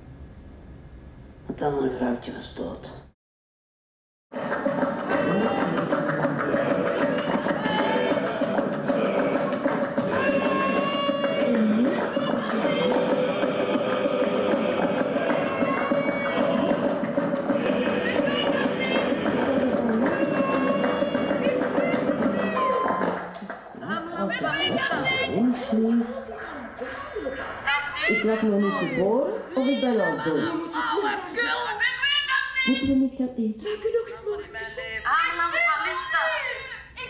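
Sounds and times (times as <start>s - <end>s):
music-theatre ensemble performing: 4.4s - 23.8s.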